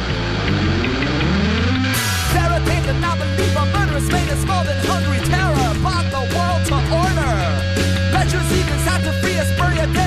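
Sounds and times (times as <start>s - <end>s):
low bass notes: 0.0s - 10.0s
rock band playing: 0.0s - 10.0s.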